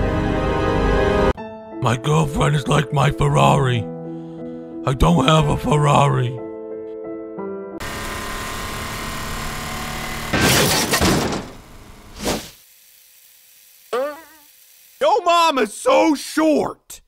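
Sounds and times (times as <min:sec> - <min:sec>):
crash with shattering: 0:10.3 - 0:11.6
wavering pitched cry: 0:13.9 - 0:14.4.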